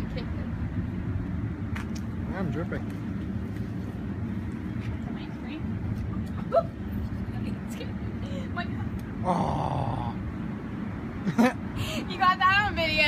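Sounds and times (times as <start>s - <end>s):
low road traffic rumble: 0.0s - 13.0s.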